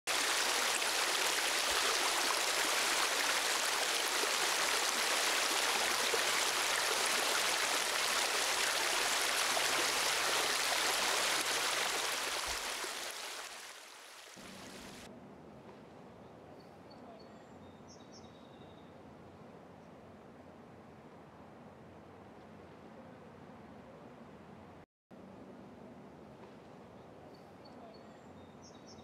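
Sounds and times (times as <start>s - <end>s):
stream water rushing: 0.1s - 15.1s.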